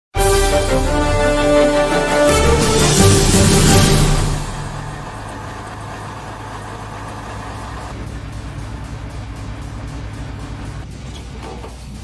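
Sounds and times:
jingle: 0:00.2 - 0:05.8
helicopter engine and rotors droning: 0:04.1 - 0:10.8.

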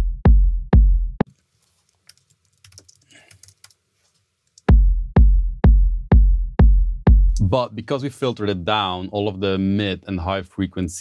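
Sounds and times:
looped electronic kick drum: 0:00.0 - 0:01.2, 0:04.7 - 0:07.5.

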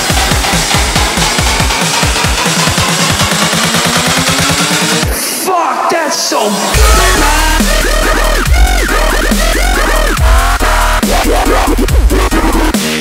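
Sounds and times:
bass: 0:00.0 - 0:05.1, 0:06.8 - 0:13.0
rising synth line: 0:06.8 - 0:12.7.

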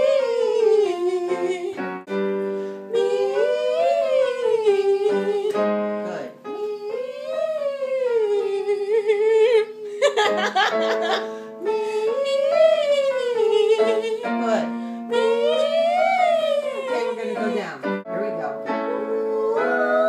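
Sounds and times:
woman singing vocal exercises: 0:00.0 - 0:02.0, 0:02.8 - 0:20.0.

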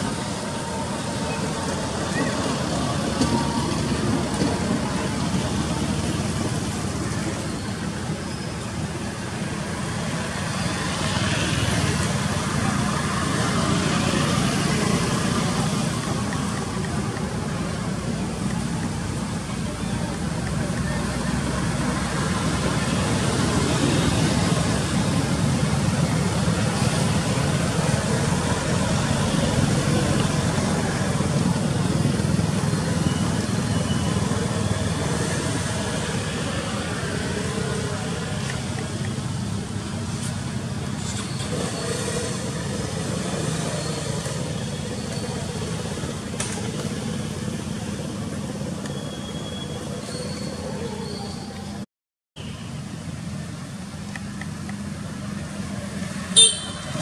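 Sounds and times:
cars and motorbikes passing: 0:00.0 - 0:51.8, 0:52.4 - 0:57.0.

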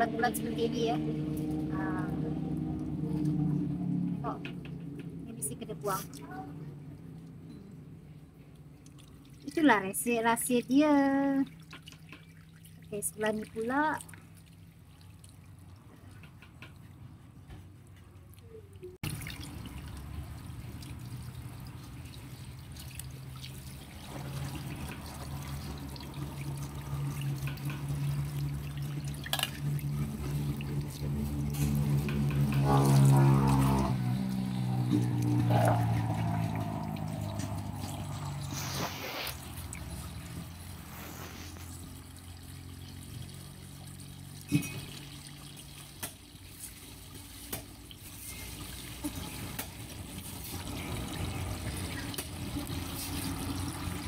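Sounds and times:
water pouring from a hose: 0:08.7 - 0:17.0, 0:18.4 - 0:54.0.

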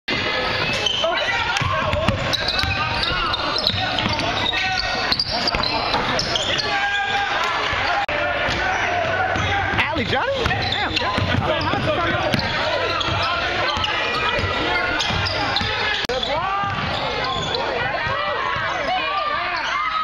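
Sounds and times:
voices calling out: 0:00.2 - 0:20.0
basketball bouncing: 0:01.6 - 0:04.4, 0:08.4 - 0:18.7.

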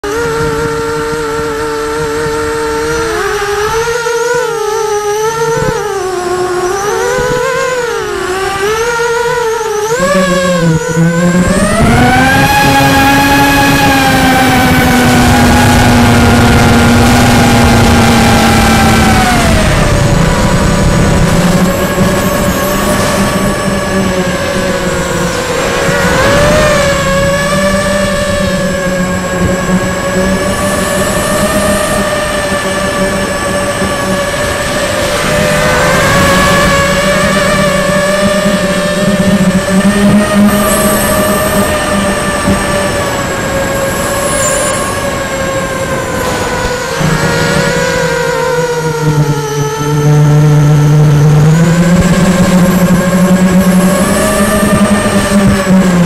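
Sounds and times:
quadcopter motors whining: 0:00.0 - 0:56.0
rushing air: 0:17.5 - 0:30.1, 0:33.3 - 0:38.7, 0:42.5 - 0:50.0.

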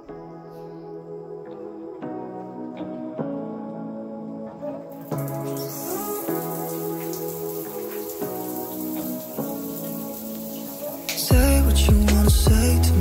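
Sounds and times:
music with slow held notes: 0:00.0 - 0:13.0
shower water spraying: 0:05.0 - 0:12.4.

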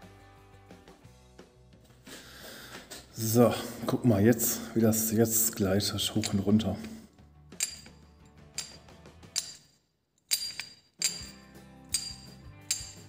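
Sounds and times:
metallic clicks and clinks: 0:06.1 - 0:13.0.

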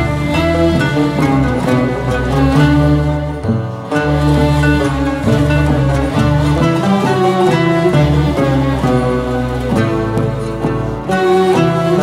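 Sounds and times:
bowed and plucked strings: 0:00.0 - 0:12.0
classical instrumental ensemble: 0:00.0 - 0:12.0
sustained bass line: 0:00.0 - 0:12.0.

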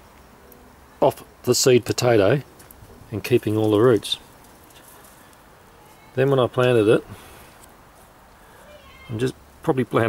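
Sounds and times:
faint background hiss: 0:00.0 - 0:10.0
man speaking: 0:03.1 - 0:04.3, 0:06.1 - 0:07.2, 0:09.1 - 0:10.0.

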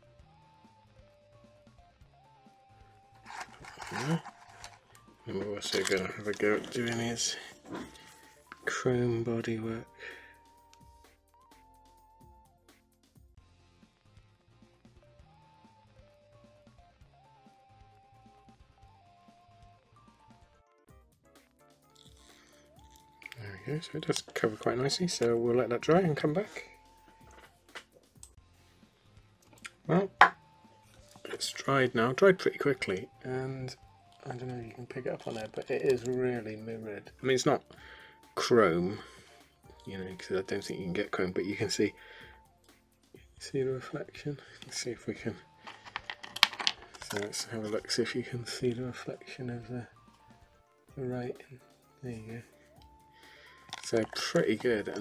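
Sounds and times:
clicks and rustles of objects: 0:03.2 - 0:08.7, 0:22.0 - 0:24.4, 0:34.1 - 0:36.2, 0:45.6 - 0:47.8, 0:53.6 - 0:55.0
man speaking: 0:03.8 - 0:04.3, 0:05.3 - 0:07.6, 0:08.6 - 0:09.9, 0:23.3 - 0:26.6, 0:31.2 - 0:37.6, 0:47.0 - 0:49.9, 0:53.8 - 0:55.0.

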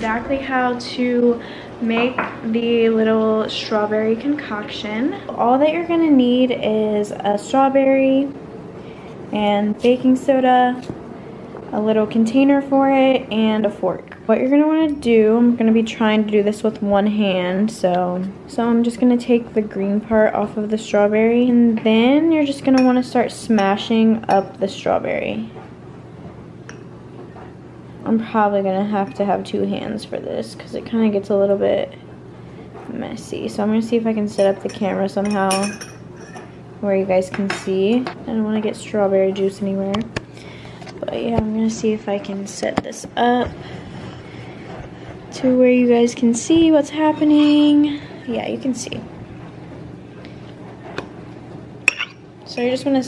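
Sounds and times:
metal fork tapping glass bowl: 0:34.4 - 0:36.4.

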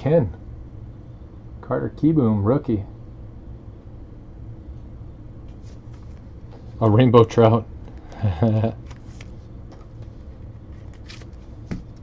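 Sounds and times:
cards rustling: 0:08.8 - 0:12.0.

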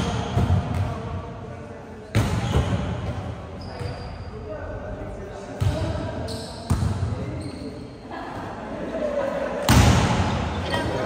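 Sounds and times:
volleyball hits echoing: 0:00.0 - 0:01.3, 0:09.6 - 0:11.0.

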